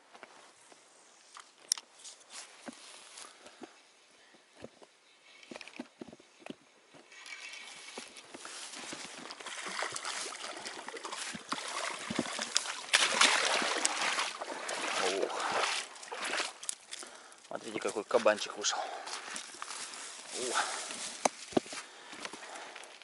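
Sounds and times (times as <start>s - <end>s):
fish splashing at water surface: 9.3s - 16.8s.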